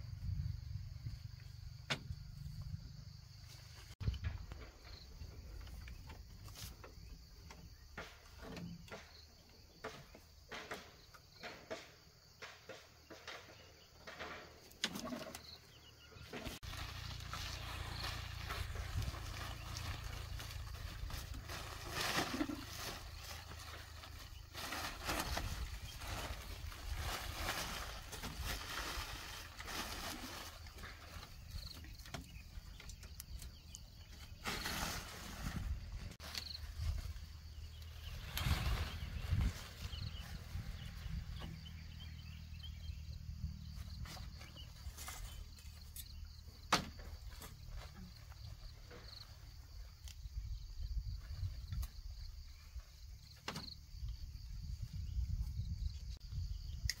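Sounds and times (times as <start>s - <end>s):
mats and tarp rustling: 16.2s - 33.0s, 33.7s - 42.0s, 43.9s - 46.0s.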